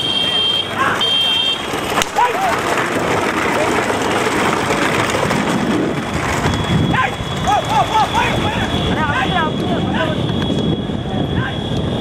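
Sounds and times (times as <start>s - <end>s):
motorbike engine: 0.0s - 12.0s
wind noise: 2.9s - 12.0s.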